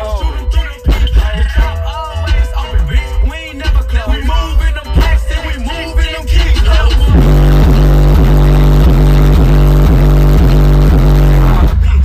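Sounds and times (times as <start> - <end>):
loud bass through car subwoofer: 0.0 - 12.0.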